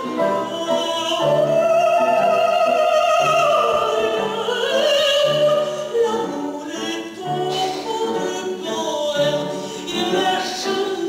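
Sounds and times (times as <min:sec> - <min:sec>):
woman singing operatically: 0:00.0 - 0:11.0.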